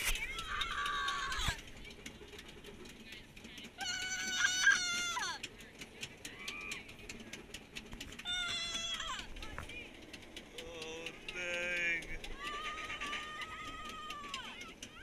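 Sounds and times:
roller coaster chain lift clicking: 0.0 - 15.0
riders calling out: 3.2 - 7.0, 8.1 - 15.0.

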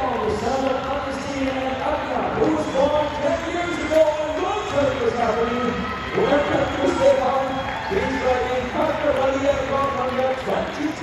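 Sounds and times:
man announcing over loudspeakers: 0.0 - 11.0.

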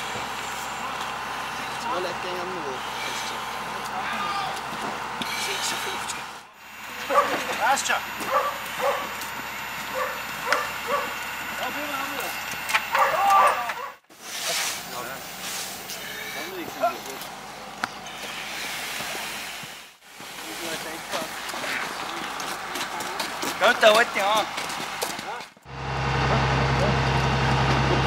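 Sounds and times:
indistinct voices outdoors: 0.0 - 28.0.

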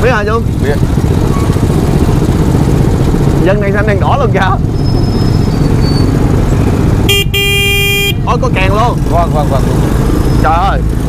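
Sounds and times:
small engine rumbling: 0.0 - 11.0
street traffic: 0.0 - 11.0.

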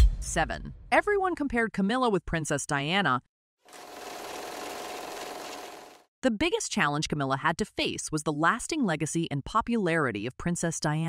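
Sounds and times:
film projector rattle: 3.7 - 6.0.

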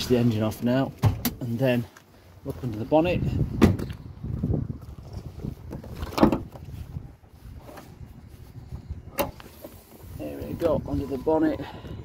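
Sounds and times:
low rumble of footsteps: 2.4 - 9.7.

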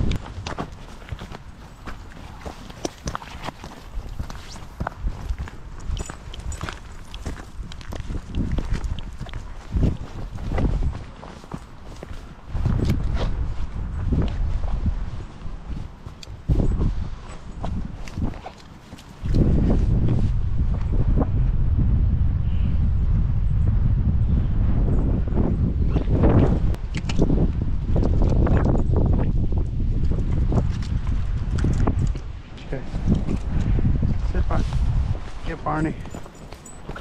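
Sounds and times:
footsteps through grass: 0.0 - 20.4
wind buffeting microphone: 0.0 - 37.0.

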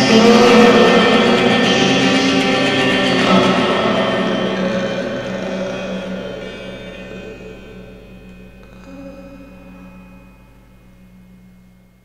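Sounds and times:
held electric guitar chord ringing: 0.0 - 12.0.

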